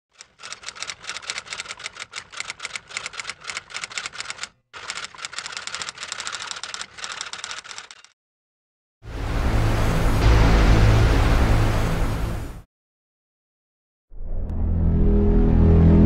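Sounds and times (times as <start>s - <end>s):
keystroke clicks: 0.2s - 8.1s.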